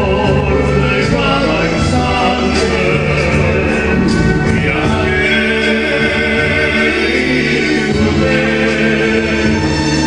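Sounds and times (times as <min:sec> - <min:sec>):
male vocal quartet singing: 0:00.0 - 0:10.0.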